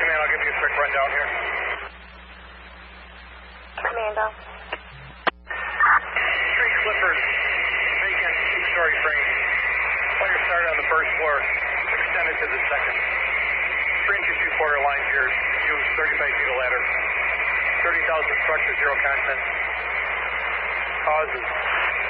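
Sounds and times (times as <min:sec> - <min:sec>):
radio static: 0:00.0 - 0:22.0
voices over radio: 0:00.0 - 0:22.0
radio click and burst: 0:03.7 - 0:22.0.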